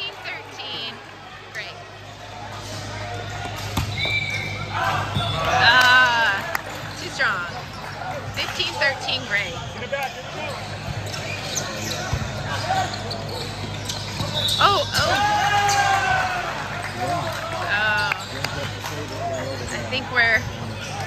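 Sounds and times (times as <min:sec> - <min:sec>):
volleyball thumps: 0:03.4 - 0:04.2.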